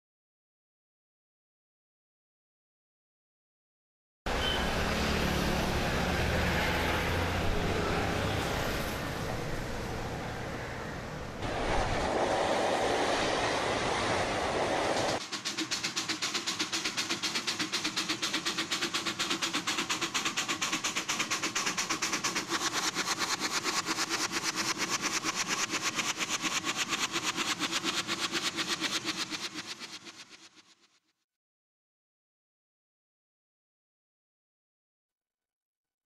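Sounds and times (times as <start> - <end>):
steam hissing: 4.3 - 9.5, 11.4 - 30.8
steam locomotive chuffing: 4.3 - 9.6, 11.4 - 30.8
street traffic: 4.3 - 14.4.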